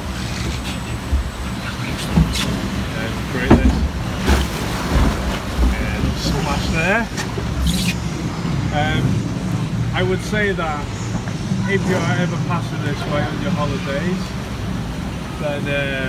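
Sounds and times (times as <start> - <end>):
rushing churning water: 0.0 - 16.0
short knocks: 3.4 - 5.8.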